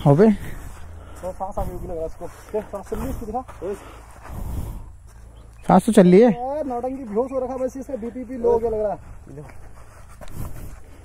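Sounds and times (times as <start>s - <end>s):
wind rumbling on microphone: 0.0s - 5.6s, 8.4s - 11.0s
rustling: 6.4s - 11.0s.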